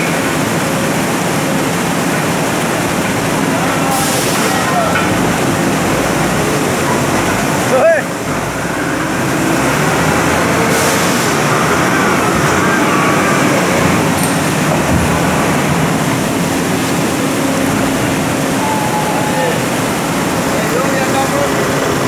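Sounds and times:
forklift engine running: 4.4s - 22.0s.

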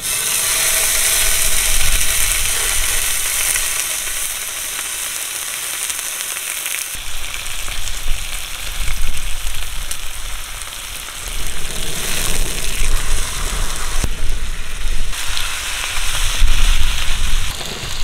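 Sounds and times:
meat sizzling on a pan: 0.0s - 18.0s
sharp pops and crackles: 0.8s - 18.0s.

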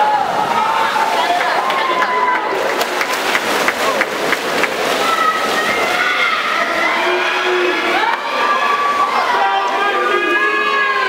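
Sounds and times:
spectators cheering and shouting: 0.0s - 11.0s
swimmers splashing: 0.0s - 11.0s.

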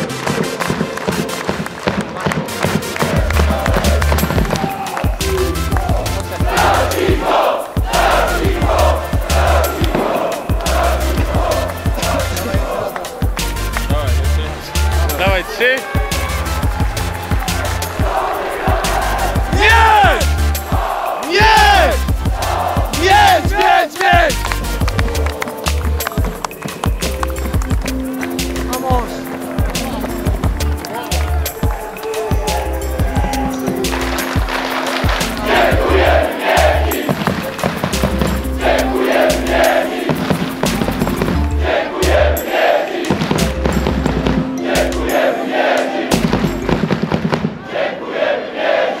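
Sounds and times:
music with beat and bass line: 2.3s - 47.2s
person speaking over music: 13.2s - 16.3s, 19.4s - 20.3s, 21.2s - 22.1s, 22.9s - 27.2s, 28.3s - 34.4s
person shouting: 19.5s - 20.3s, 21.2s - 22.0s, 23.0s - 24.4s.

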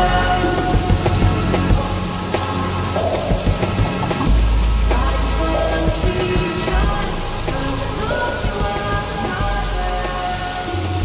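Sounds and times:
slow music with deep bass: 0.0s - 11.0s
steady rain hissing: 0.0s - 11.0s.

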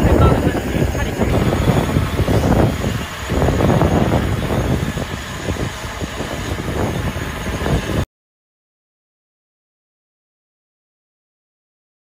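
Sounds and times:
drone hovering hum: 0.0s - 8.0s
wind rumbling on microphone: 0.0s - 8.0s.

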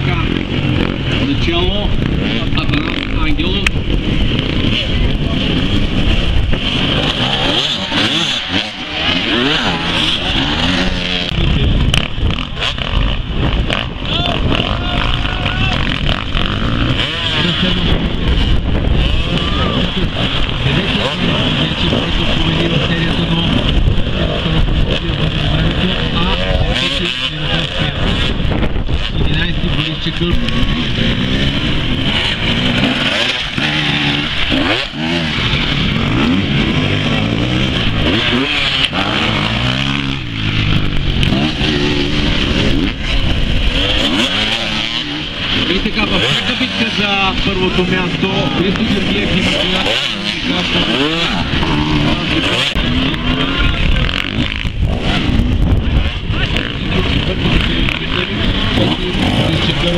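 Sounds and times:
spectators' voices: 0.0s - 12.7s, 13.5s - 59.9s
dirt bike engines revving: 0.0s - 59.9s.

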